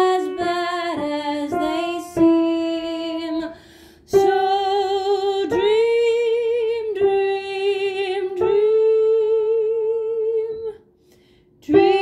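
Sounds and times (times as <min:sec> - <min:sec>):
soprano voice singing with vibrato: 0:00.0 - 0:10.8, 0:11.6 - 0:12.0.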